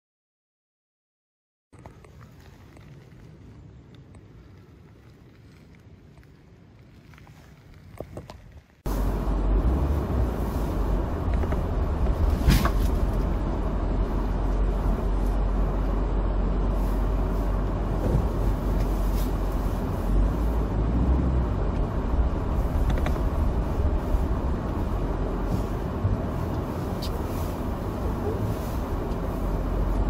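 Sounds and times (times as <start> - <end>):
engine and tyres rumbling: 1.7 - 30.0.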